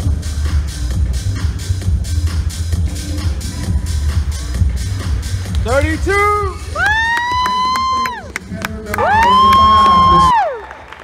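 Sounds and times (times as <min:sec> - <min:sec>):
stage music: 0:00.0 - 0:11.0
person whooping: 0:06.7 - 0:08.3, 0:09.0 - 0:10.7.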